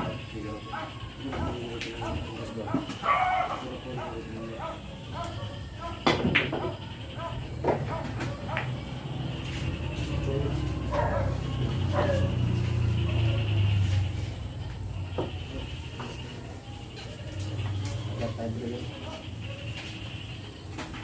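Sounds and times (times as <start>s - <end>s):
billiard balls clacking: 7.6s - 8.8s.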